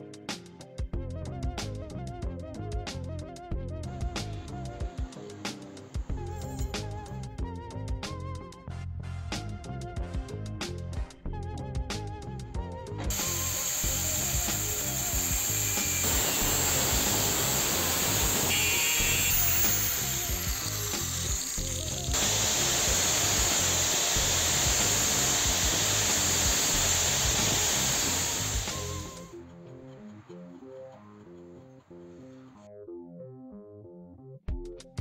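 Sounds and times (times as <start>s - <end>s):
angle grinder grinding steel: 13.1s - 29.4s.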